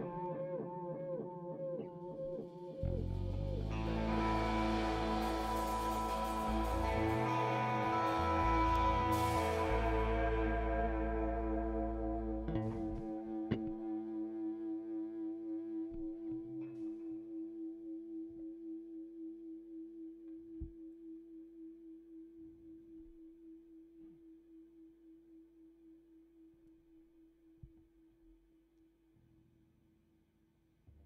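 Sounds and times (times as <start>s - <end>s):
electric guitar chord ringing out: 2.9s - 14.7s.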